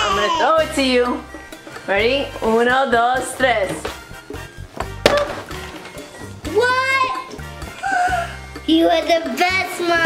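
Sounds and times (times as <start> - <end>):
background music: 0.0 - 10.0
toy box landing with a thud: 4.8 - 5.9.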